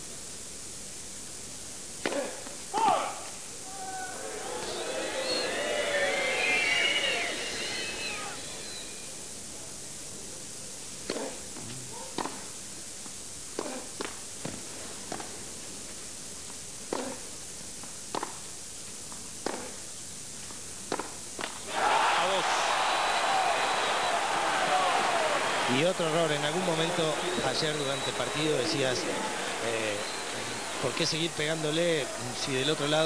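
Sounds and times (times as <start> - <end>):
crowd cheering: 3.7 - 8.7, 21.6 - 33.0
crowd chanting: 4.2 - 8.4, 21.7 - 33.0.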